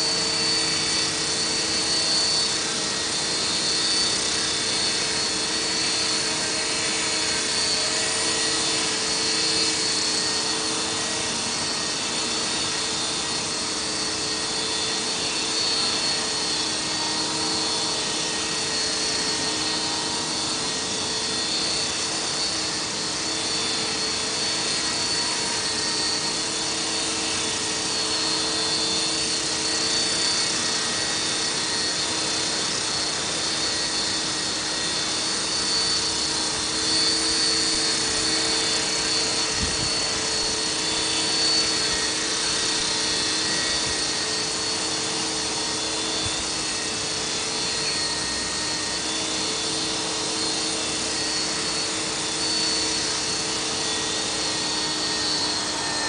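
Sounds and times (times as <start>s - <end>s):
electric motor and gears whining: 0.0s - 56.0s.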